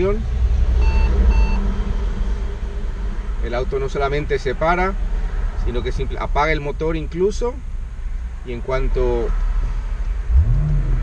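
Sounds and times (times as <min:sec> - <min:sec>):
road traffic rumble: 0:00.0 - 0:11.0
short electronic beeps: 0:00.8 - 0:01.6.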